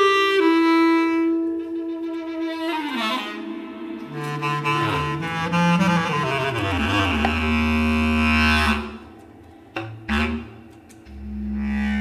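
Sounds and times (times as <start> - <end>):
bass clarinet low notes: 0.0 - 12.0.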